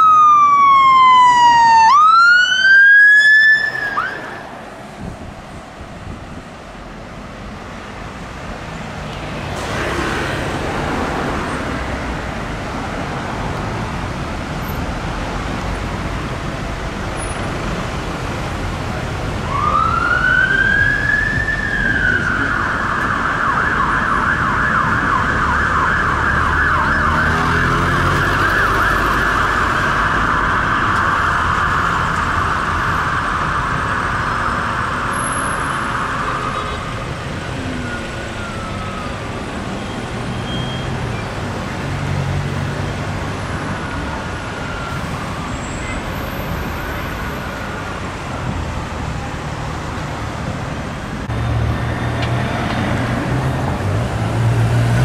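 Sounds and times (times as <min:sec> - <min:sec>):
fire engine siren: 0:00.0 - 0:05.2, 0:17.2 - 0:50.2
road traffic: 0:00.0 - 0:55.0.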